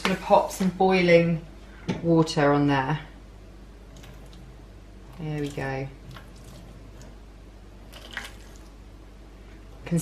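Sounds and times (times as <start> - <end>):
water trickling into metal tray: 5.1 - 7.1.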